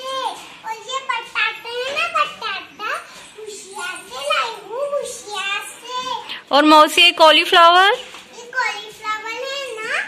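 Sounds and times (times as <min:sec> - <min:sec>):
girl speaking: 0:00.0 - 0:06.4, 0:08.3 - 0:10.0.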